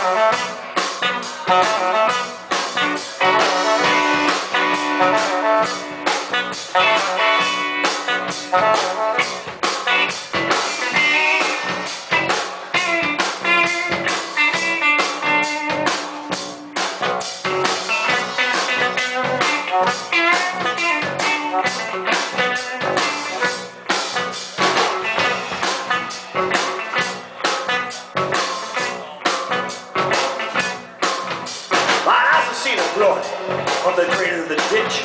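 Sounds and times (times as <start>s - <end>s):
electric guitar: 0.0s - 32.5s
drum kit beat: 0.0s - 35.0s
electric bass: 0.0s - 35.0s.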